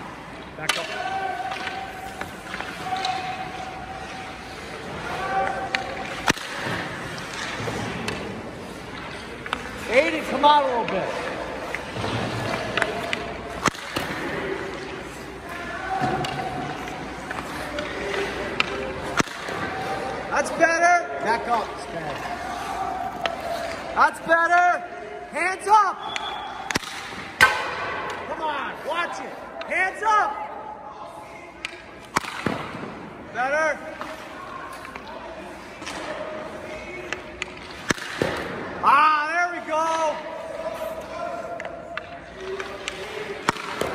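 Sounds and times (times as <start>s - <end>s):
light clicks of pucks and sticks: 0.0s - 25.0s, 26.0s - 30.2s, 31.4s - 33.0s, 33.7s - 39.0s, 39.6s - 43.9s
hockey stick cracking puck: 0.6s - 20.6s, 26.1s - 28.2s, 31.6s - 33.0s, 37.0s - 38.6s, 41.6s - 43.9s.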